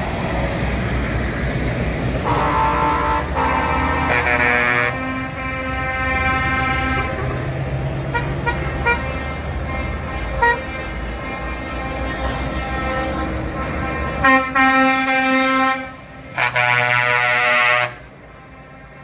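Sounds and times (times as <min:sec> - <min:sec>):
diesel trucks rumbling past: 0:00.0 - 0:19.0
truck air horns: 0:02.2 - 0:19.0.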